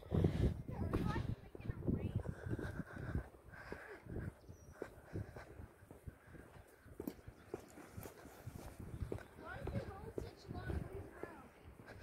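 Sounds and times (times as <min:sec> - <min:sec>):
faint footsteps outdoors: 0:00.0 - 0:12.0.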